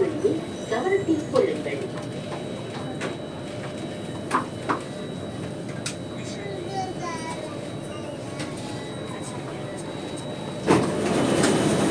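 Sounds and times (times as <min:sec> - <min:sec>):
train cabin hum: 0:00.0 - 0:11.9
train doors opening: 0:07.3 - 0:11.9.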